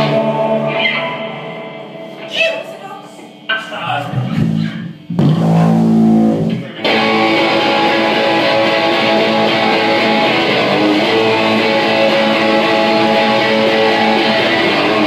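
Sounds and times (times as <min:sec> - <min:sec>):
electric guitar playing: 0:00.0 - 0:02.2, 0:04.1 - 0:15.0.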